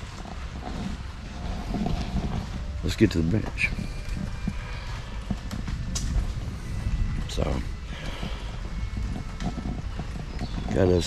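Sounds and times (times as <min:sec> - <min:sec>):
camera handling rumble: 0:03.4 - 0:11.0.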